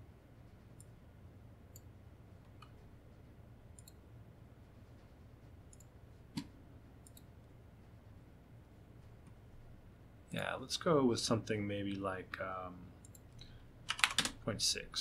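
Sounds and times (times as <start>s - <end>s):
low steady room hum: 0.0s - 15.0s
computer mouse clicks: 3.7s - 4.0s, 5.7s - 7.3s.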